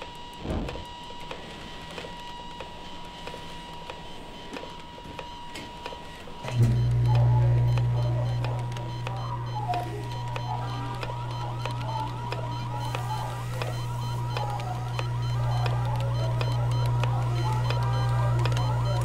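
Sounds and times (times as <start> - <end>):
steady low hum: 0.0 - 19.0
rapid electronic chirps: 5.3 - 19.0.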